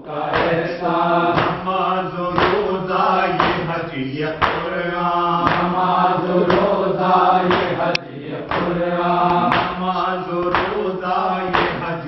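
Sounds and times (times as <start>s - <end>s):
group of voices chanting: 0.0s - 12.0s
man chanting a lament: 0.0s - 12.0s
rhythmic chest-beating: 0.0s - 12.0s.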